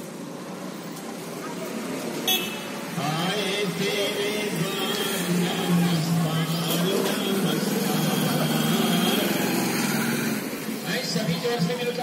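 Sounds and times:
scooter passing: 0.0 - 10.9
motorcycle passing: 1.5 - 11.0.

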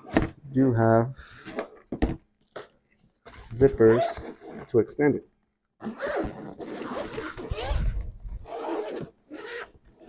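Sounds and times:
backpack clicks and rustles: 5.8 - 10.0.

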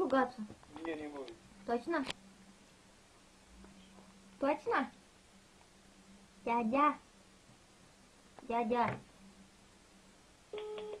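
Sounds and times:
faint room hum: 0.0 - 11.0
telephone busy tone: 10.5 - 11.0.

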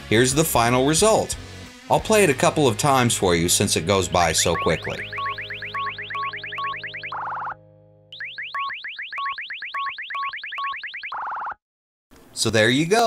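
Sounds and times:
rising electronic chirps: 4.5 - 7.6, 8.2 - 11.6
short electronic beeps: 4.6 - 7.6, 8.2 - 11.6
steady electronic tone: 4.6 - 7.6, 8.2 - 11.6.

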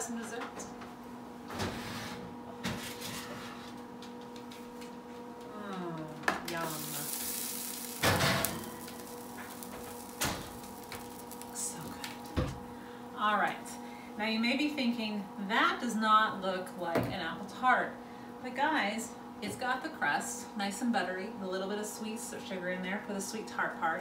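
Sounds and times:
faint steady hum: 0.0 - 24.0.

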